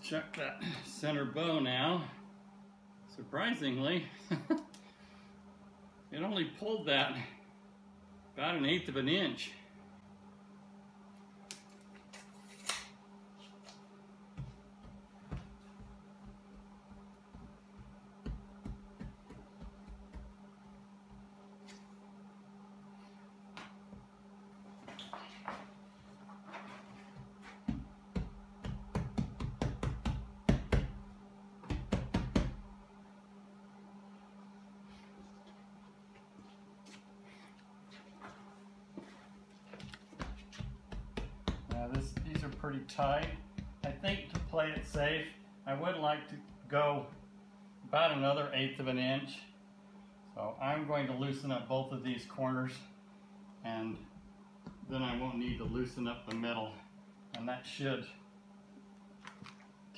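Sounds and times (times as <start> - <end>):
steady low hum: 0.0 - 59.9
hands knocking and tapping: 17.4 - 20.4, 27.6 - 31.0, 31.6 - 32.6, 39.8 - 45.1.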